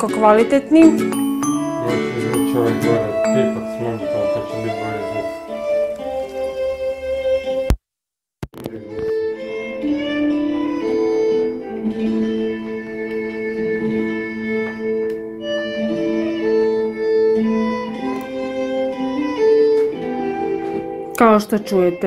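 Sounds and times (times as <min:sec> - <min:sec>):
instrumental music with sustained notes: 0:00.0 - 0:07.7, 0:08.6 - 0:22.0.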